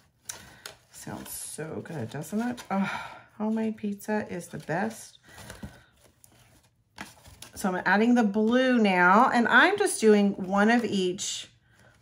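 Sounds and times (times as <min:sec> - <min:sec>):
cardstock and ribbon rustling: 0:00.0 - 0:08.6.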